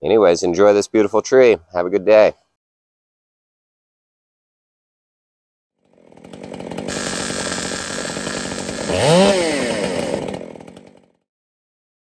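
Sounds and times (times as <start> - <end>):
chainsaw revving: 5.8 - 11.2.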